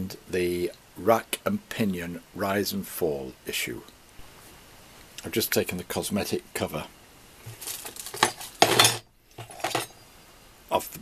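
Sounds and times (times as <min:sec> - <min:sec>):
metallic rattle: 0:07.5 - 0:10.0
light metal clinks: 0:07.6 - 0:10.0.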